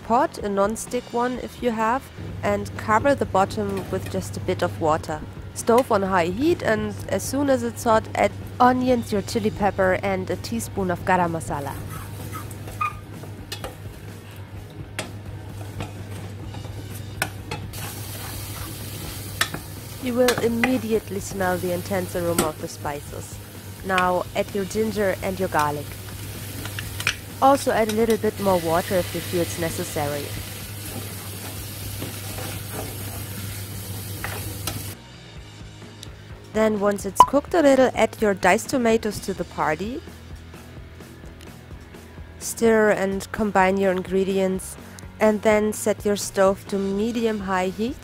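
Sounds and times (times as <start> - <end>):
onions sizzling in a pot: 15.0 - 35.0
spatula scraping a pot: 17.7 - 18.8.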